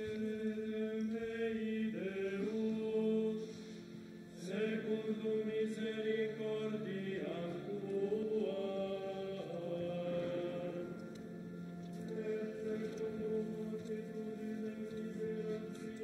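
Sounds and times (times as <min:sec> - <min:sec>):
voices singing unaccompanied chant: 0:00.0 - 0:11.2, 0:11.8 - 0:16.0.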